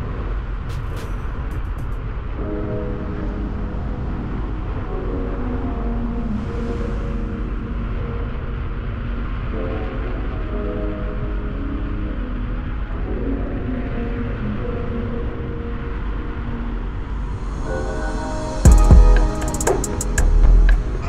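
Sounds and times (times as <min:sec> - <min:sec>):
music of sustained chords: 0:00.0 - 0:21.0
steady low rumble: 0:00.0 - 0:21.0.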